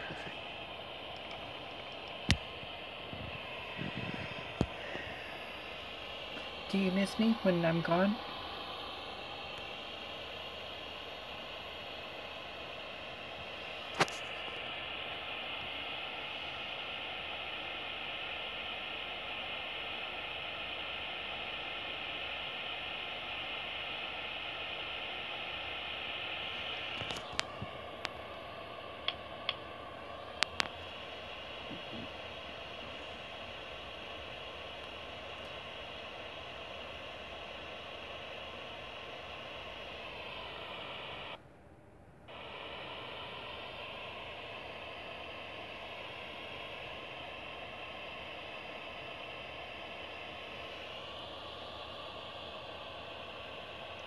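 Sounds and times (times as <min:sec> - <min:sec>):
hiss-like radio static: 0:00.0 - 0:41.4, 0:42.3 - 0:54.0.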